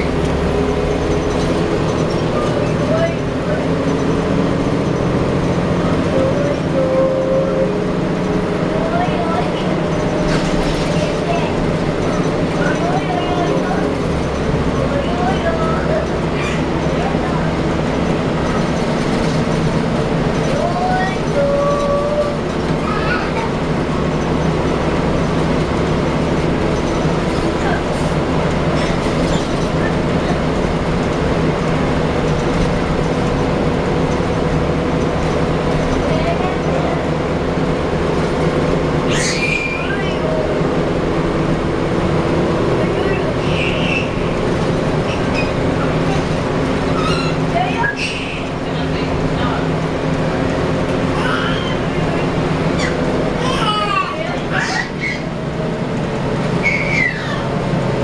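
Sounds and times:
bus engine hum: 0.0 - 58.0.

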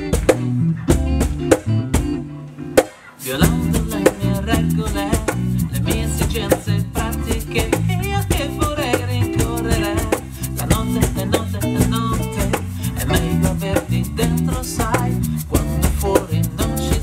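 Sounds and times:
electric bass: 0.0 - 17.0
electric guitar: 0.0 - 17.0
fast percussion ticking: 3.2 - 17.0
man singing: 3.2 - 17.0.

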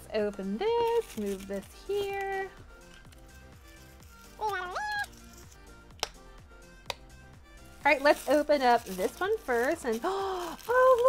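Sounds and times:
soft background music: 0.0 - 11.0
plastic shell clicks: 5.9 - 6.2.

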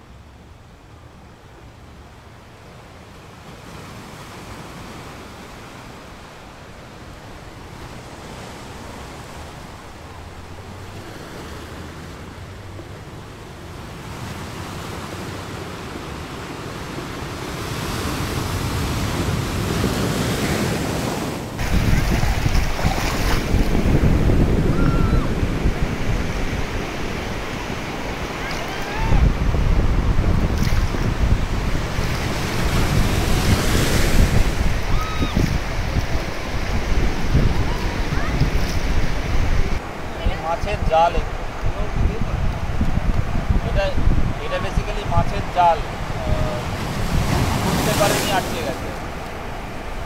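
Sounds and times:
wind rumbling on microphone: 0.0 - 50.0
sea water lapping on sand: 5.0 - 24.7, 25.4 - 50.0.

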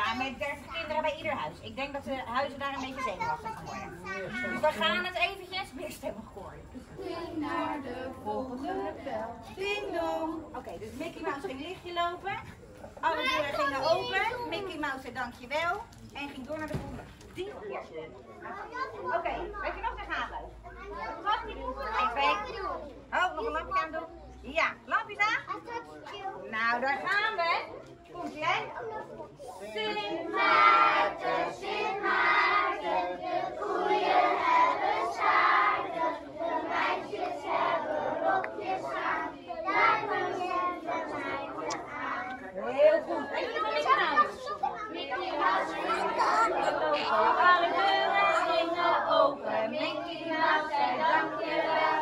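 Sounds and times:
children talking and calling out: 0.0 - 15.2, 18.1 - 24.4, 25.2 - 26.6, 28.2 - 52.0.

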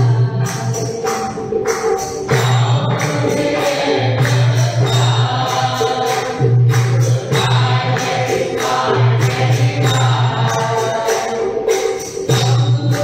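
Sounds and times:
rhythmic percussion: 0.0 - 13.0
congregation singing: 2.3 - 13.0.

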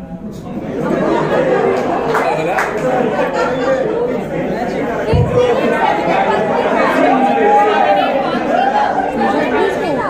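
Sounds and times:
overlapping chatter of voices: 0.0 - 10.0.

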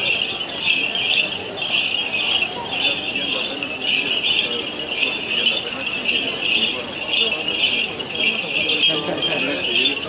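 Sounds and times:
insects chirring: 0.0 - 10.0
murmur of walking crowd: 0.0 - 10.0.

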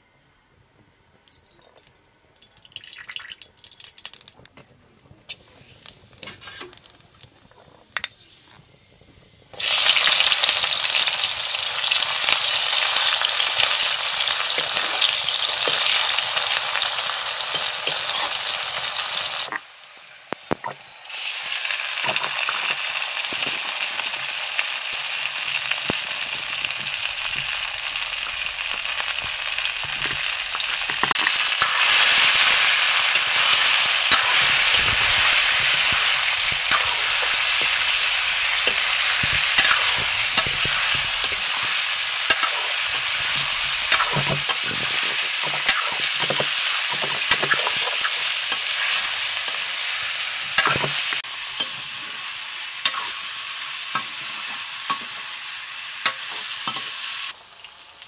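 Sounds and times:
chicken sizzling in hot oil: 9.6 - 58.0
metal ladle scraping a pan: 29.8 - 49.6.

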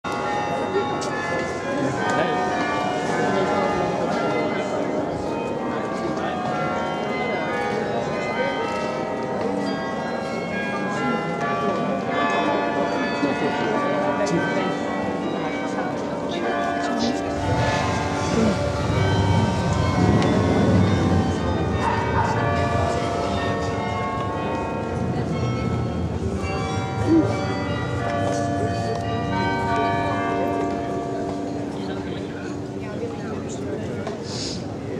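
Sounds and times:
church bells ringing: 0.0 - 34.0
crowd murmur: 0.1 - 34.9.

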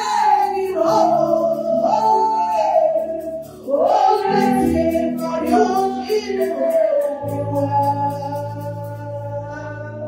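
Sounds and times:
instrumental backing with steady beat: 0.0 - 10.0
woman singing into a microphone: 0.0 - 10.0.

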